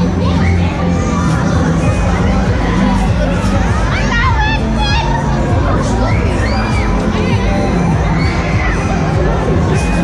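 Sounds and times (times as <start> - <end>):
loud fairground music: 0.0 - 10.0.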